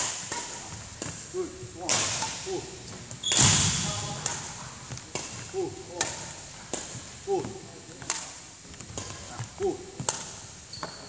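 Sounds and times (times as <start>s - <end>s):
racket hitting shuttlecock: 0.0s - 11.0s
footsteps on wooden court: 2.5s - 11.0s.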